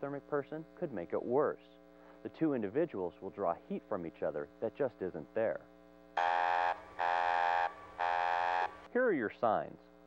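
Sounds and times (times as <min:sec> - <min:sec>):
electronic warning buzzer: 0:06.2 - 0:08.9.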